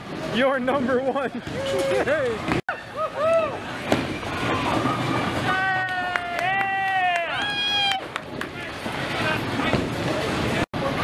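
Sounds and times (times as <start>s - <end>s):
bowling ball rolling on wooden lane: 3.8s - 5.5s.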